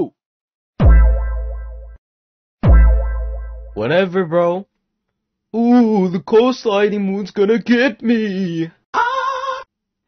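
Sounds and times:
deep bass boom: 0.8 - 2.0, 2.6 - 3.8.

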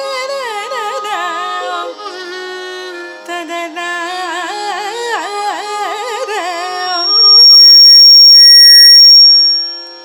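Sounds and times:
woman singing: 0.0 - 7.4
tanpura drone: 0.0 - 10.0
high-pitched feedback whistle: 6.7 - 10.0.

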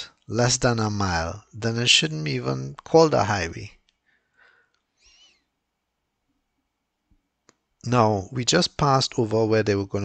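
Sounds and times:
man talking: 0.0 - 3.8, 7.8 - 10.0.

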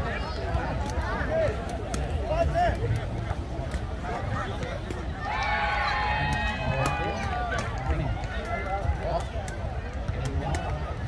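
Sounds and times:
long drawn-out shout: 5.2 - 7.5.

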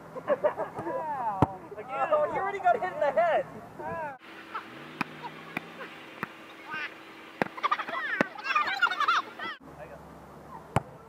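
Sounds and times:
players laughing: 0.1 - 1.2, 4.2 - 9.6
players calling out excitedly: 0.8 - 9.6
volleyball being hit: 1.4 - 1.6, 5.0 - 6.4, 7.4 - 7.6.

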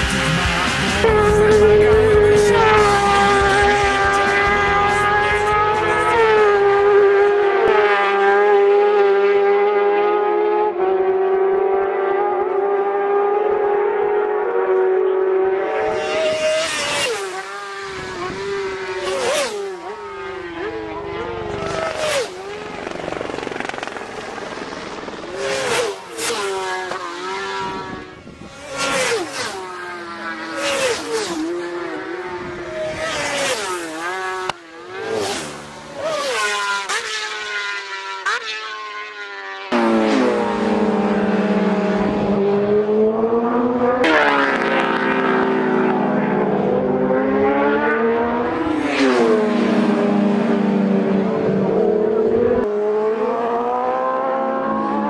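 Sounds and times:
racing motorcycles passing: 0.0 - 55.0.

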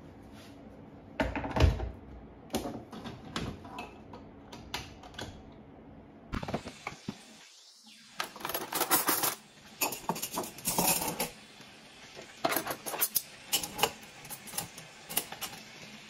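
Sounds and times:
metal cutlery clinking: 8.4 - 11.4, 12.4 - 15.8.

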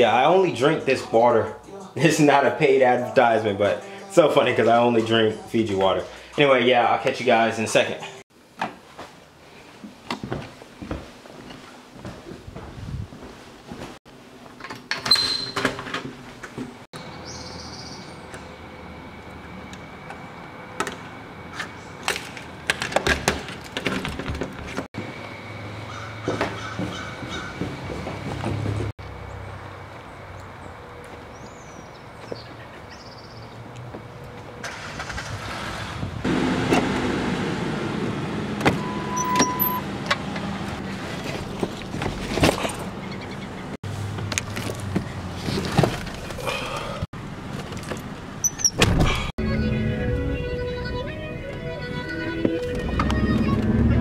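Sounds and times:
car sounds: 16.9 - 31.4, 33.5 - 54.0.

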